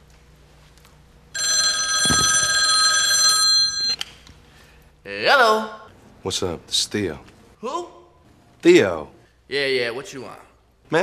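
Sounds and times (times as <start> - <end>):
telephone ringing: 1.4 - 4.0.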